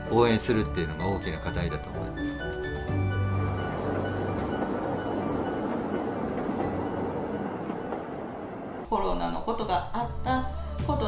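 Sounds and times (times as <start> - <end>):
electric train rumbling past: 0.0 - 10.8.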